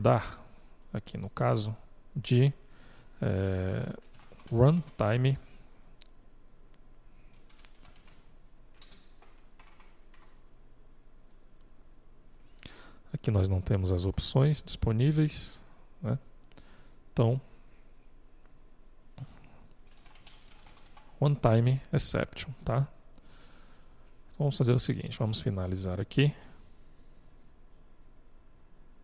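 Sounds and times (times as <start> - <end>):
computer keyboard keystrokes: 4.0 - 4.6, 7.3 - 10.4, 19.9 - 21.1.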